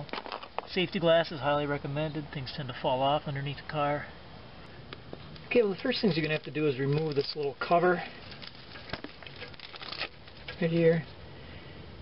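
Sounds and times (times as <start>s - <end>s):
rustling and scraping: 0.0s - 0.8s, 5.0s - 11.2s.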